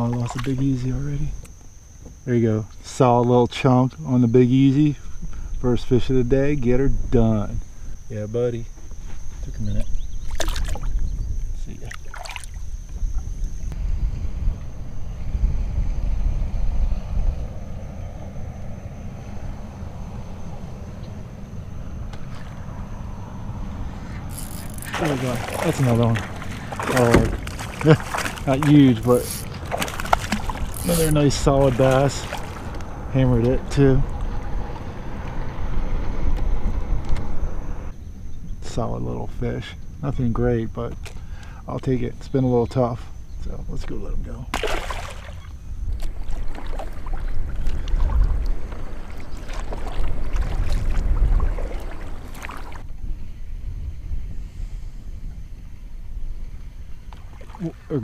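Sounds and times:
water around a kayak: 0.0s - 2.2s, 8.8s - 17.4s, 19.0s - 34.9s, 39.6s - 54.2s, 55.2s - 58.0s
insect buzzing: 0.0s - 38.5s
wind rumbling on microphone: 5.2s - 41.1s, 43.1s - 58.0s.

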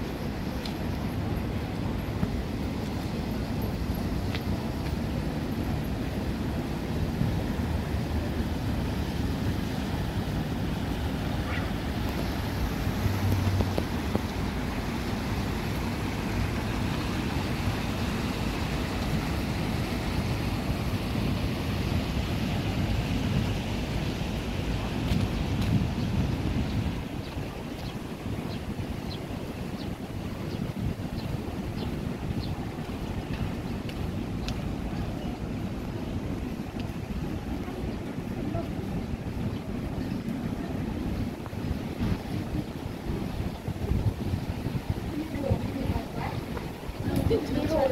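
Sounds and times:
stream water running over rocks: 0.0s - 47.9s
wind rumbling on microphone: 0.0s - 47.9s.

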